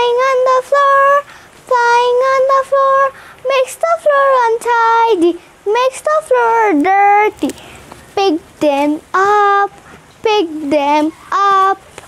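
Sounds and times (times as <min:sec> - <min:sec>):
girl singing unaccompanied: 0:00.0 - 0:12.0.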